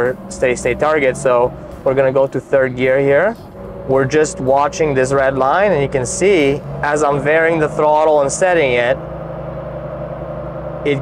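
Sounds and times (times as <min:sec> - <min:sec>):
car engine running steadily: 0:00.0 - 0:11.0.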